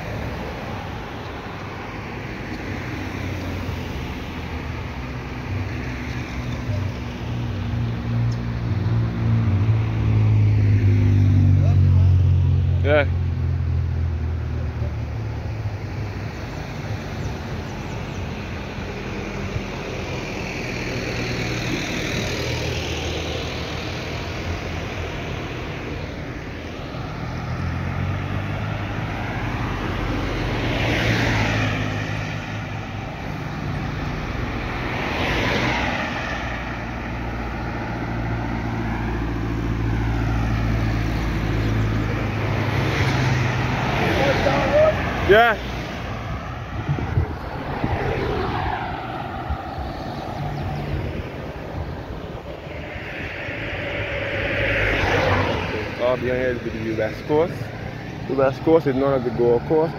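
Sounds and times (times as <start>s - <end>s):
cars passing on highway: 0.0s - 59.9s
low rumble: 46.3s - 58.1s.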